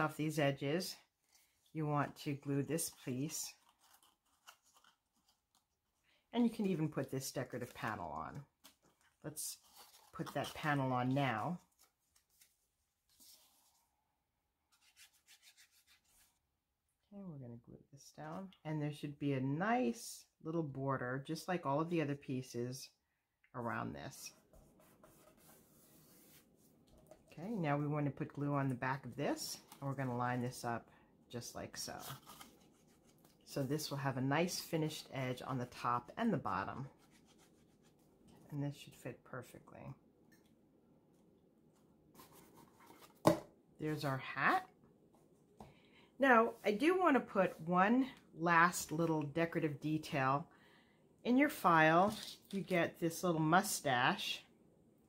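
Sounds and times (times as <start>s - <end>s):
paper rubbing and scratching: 14.7s - 16.4s, 36.9s - 38.0s.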